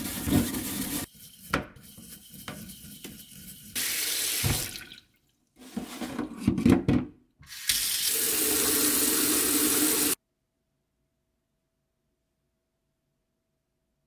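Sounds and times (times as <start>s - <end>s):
tap water pouring into metal sink: 3.8s - 5.2s.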